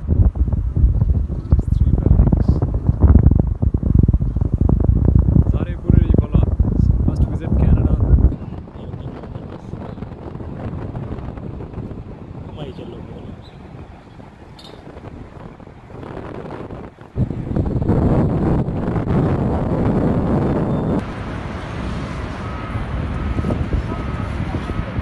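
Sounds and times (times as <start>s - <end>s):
wind buffeting microphone: 0.0s - 25.0s.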